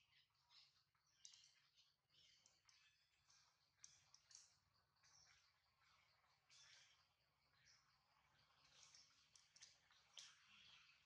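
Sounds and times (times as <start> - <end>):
faint high-pitched hiss: 0.0 - 11.0
faint clicks: 1.2 - 5.2, 8.6 - 10.8.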